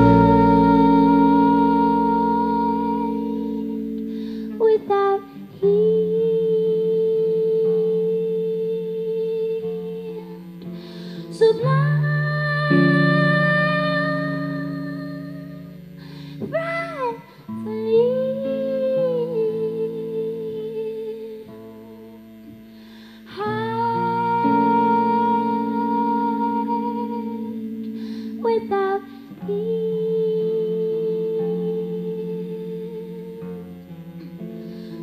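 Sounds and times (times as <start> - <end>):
sparse guitar accompaniment: 0.0 - 35.0
woman singing wordless notes: 0.0 - 35.0.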